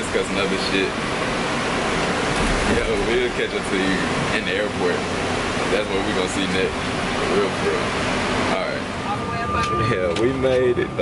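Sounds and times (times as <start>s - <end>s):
air-conditioning: 0.0s - 11.0s
bus cabin rushing noise: 0.0s - 11.0s.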